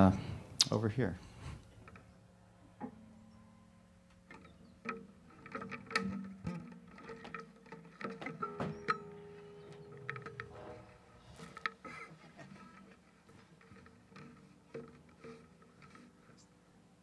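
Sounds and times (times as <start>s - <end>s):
acoustic guitar fingerpicked notes: 4.4s - 17.0s.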